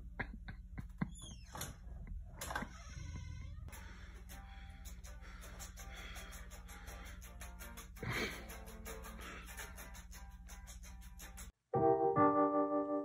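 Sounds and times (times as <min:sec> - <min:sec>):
steady low hum: 0:01.7 - 0:11.5.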